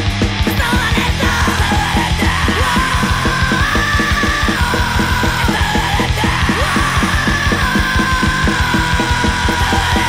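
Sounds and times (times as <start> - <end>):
distorted guitars: 0.0 - 10.0
fast drum beat: 0.0 - 10.0
punk band playing: 0.0 - 10.0
shouted vocals: 0.5 - 10.0.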